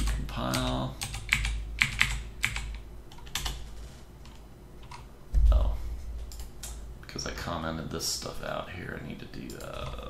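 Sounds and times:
computer keyboard typing: 0.0s - 5.1s, 6.3s - 6.8s.

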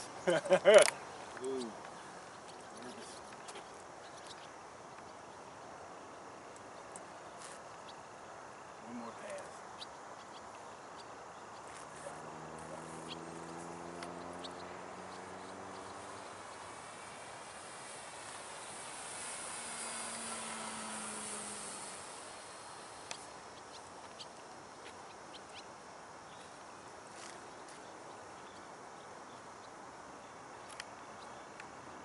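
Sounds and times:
model plane motor humming overhead: 11.1s - 25.6s.

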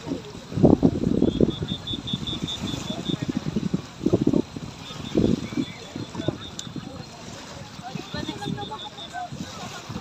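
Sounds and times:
short high-pitched beeps: 1.2s - 3.3s, 8.0s - 9.2s.

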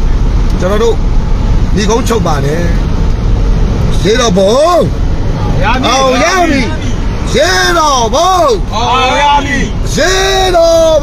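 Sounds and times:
vehicle engine and road noise: 0.0s - 11.0s
man speaking: 3.9s - 11.0s.

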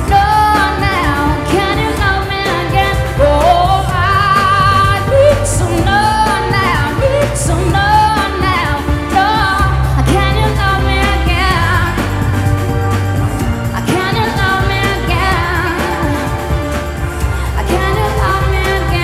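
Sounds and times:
woman singing into microphone: 0.0s - 12.8s, 13.6s - 19.0s
amplified backing music: 0.0s - 19.0s.

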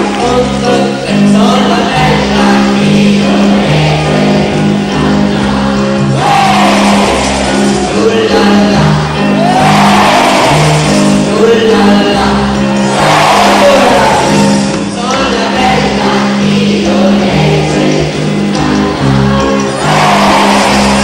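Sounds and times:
repeating bass line: 0.0s - 21.0s.

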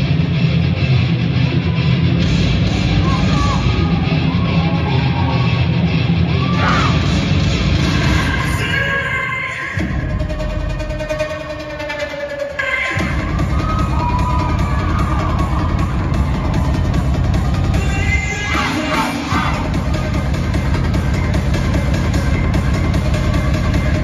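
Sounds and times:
dance music with heavy bass beat: 0.0s - 24.0s.

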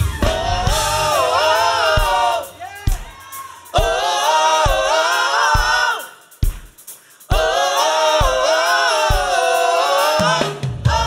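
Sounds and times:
mixed choir singing: 0.0s - 6.3s, 7.3s - 11.0s
low thumping beat: 0.0s - 9.4s.

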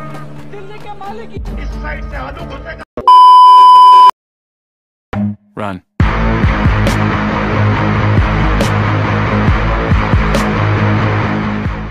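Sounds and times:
test-tone beep: 3.1s - 4.1s.

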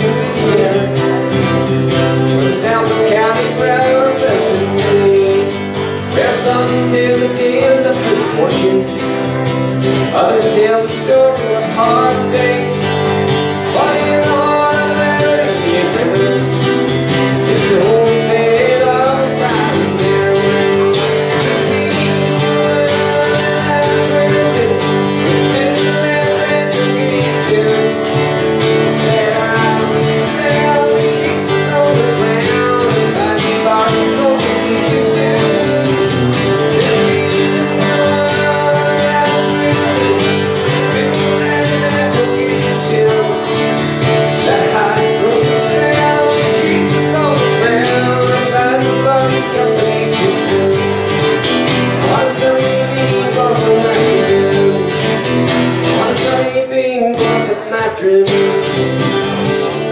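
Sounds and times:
man singing: 0.0s - 59.9s
strummed acoustic guitar: 0.0s - 59.9s.

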